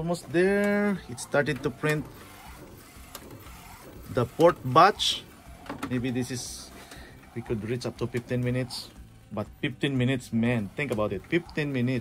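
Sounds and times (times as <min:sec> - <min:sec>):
printer running mechanically: 0:00.0 - 0:12.0.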